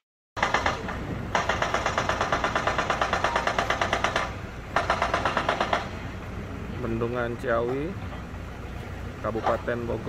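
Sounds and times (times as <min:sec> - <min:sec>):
machinery hammering: 0:00.4 - 0:06.0
low engine rumble: 0:00.4 - 0:10.0.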